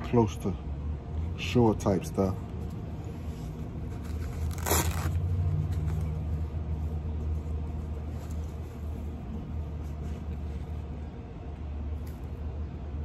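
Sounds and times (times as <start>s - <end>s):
cloth sleeve rustling swish: 3.4s - 6.0s.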